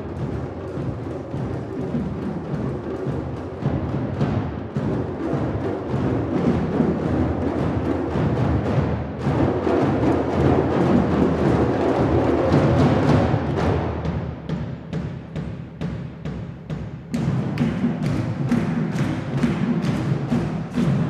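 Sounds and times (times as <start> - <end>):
djembes played by hand: 0.0 - 21.0.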